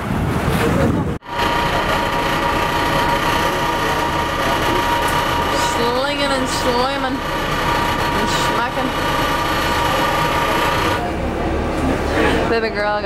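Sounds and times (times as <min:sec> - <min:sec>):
wind and water rushing: 0:00.0 - 0:01.3
boat engine droning: 0:00.2 - 0:13.0.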